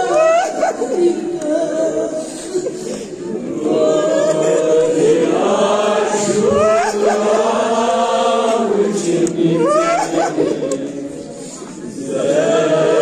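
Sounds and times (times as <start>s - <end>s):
group chanting a lament: 0.0s - 13.0s.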